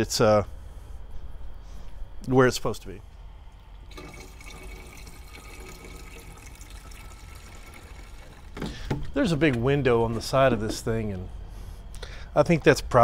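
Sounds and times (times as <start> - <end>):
coolant pouring from a jug: 3.5 - 8.9.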